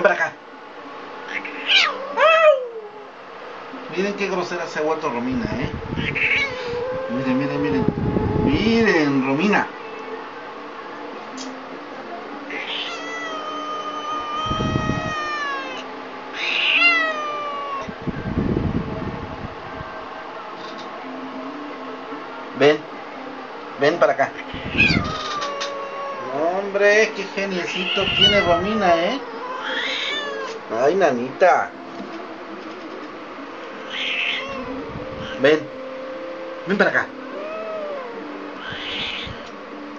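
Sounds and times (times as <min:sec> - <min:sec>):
electric fan humming: 0:00.0 - 0:39.9
cat yowling: 0:01.2 - 0:03.1, 0:05.9 - 0:08.7, 0:12.5 - 0:17.9, 0:24.3 - 0:26.8, 0:27.5 - 0:30.6, 0:33.8 - 0:35.4, 0:37.3 - 0:39.5
cat low rough rumble: 0:05.5 - 0:08.8.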